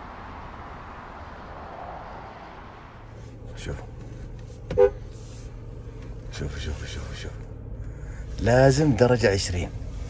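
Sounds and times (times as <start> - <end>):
low steady hum: 2.9 - 10.0
car horn toot: 4.7 - 5.0.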